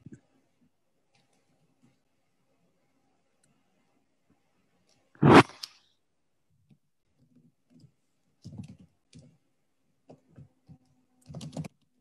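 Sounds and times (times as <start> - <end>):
keyboard typing: 10.8 - 11.9.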